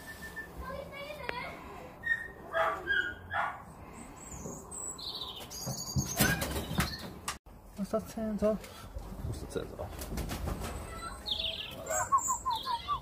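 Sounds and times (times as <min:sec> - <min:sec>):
bird calls and whistles: 0:04.2 - 0:07.2, 0:11.2 - 0:13.0
wings flapping: 0:09.8 - 0:11.0.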